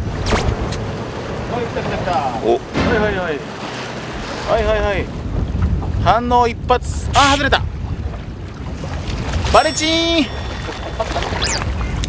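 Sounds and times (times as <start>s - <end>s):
choppy sea water: 0.0s - 12.0s
wind buffeting microphone: 0.0s - 12.0s.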